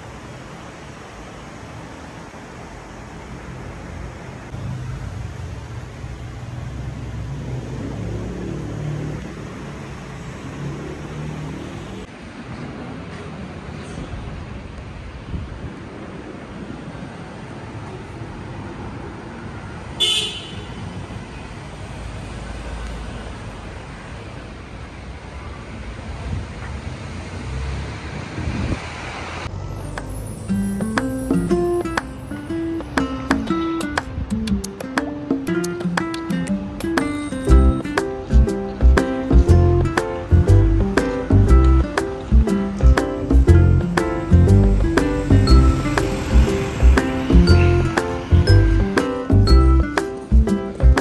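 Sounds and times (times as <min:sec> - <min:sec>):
traffic noise: 0:00.0 - 0:51.0
wind rumble on microphone: 0:14.0 - 0:16.8, 0:26.1 - 0:27.0, 0:28.0 - 0:29.1
low engine hum: 0:37.5 - 0:51.0.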